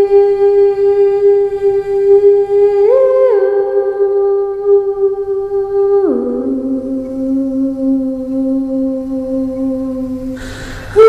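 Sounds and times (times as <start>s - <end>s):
woman singing long note: 0.0s - 11.0s.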